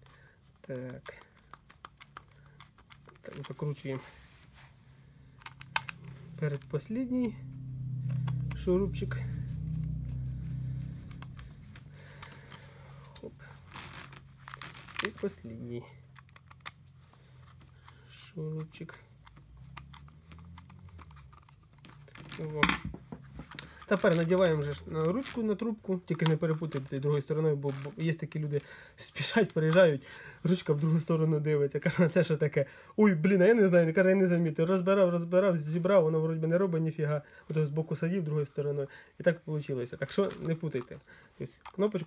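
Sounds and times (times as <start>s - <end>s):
faint steady hum: 0.0s - 25.0s
light clicking of screw: 0.8s - 3.8s, 16.1s - 16.8s
screwdriver clicks on plastic: 5.4s - 6.0s
plastic clack: 5.4s - 6.2s.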